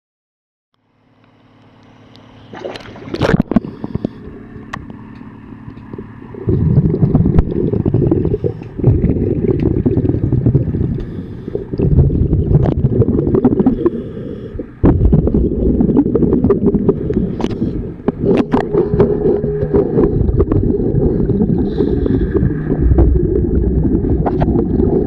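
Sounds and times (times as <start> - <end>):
underwater exhaled breath bubbling: 2.5 - 4.5, 5.9 - 25.0.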